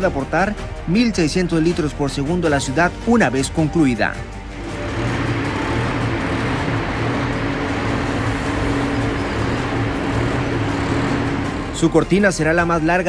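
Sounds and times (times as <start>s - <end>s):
mechanical hum: 4.6s - 11.8s.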